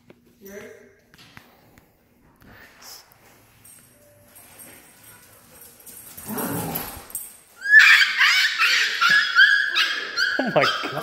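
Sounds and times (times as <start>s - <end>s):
dog yelping and whining: 7.6s - 11.0s.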